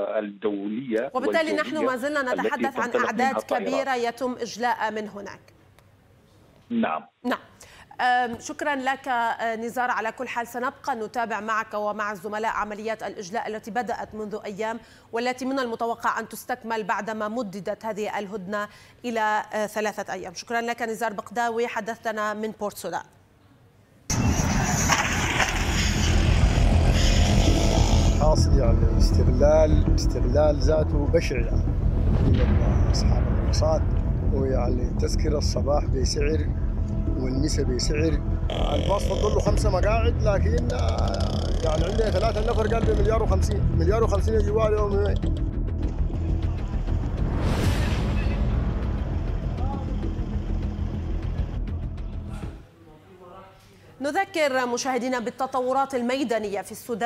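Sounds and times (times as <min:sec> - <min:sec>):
heavy low rumble: 0:24.1 - 0:52.6.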